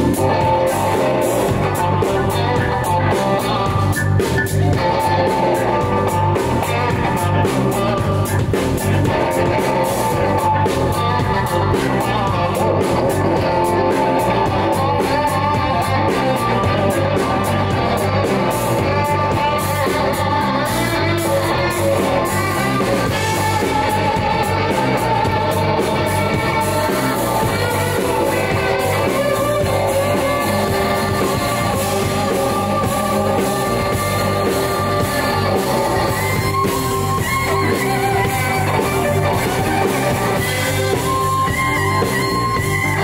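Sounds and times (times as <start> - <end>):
bass and drum groove: 0.0 - 43.0
electric guitar lead: 0.0 - 43.0.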